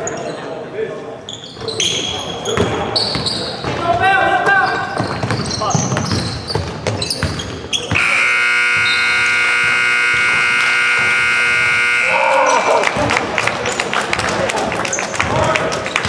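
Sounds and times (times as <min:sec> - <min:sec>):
players' voices: 0:00.0 - 0:16.0
shoes squeaking on hardwood floor: 0:01.3 - 0:11.9
basketball bouncing: 0:02.6 - 0:04.0, 0:04.9 - 0:12.0
scoreboard horn blast: 0:08.0 - 0:12.8.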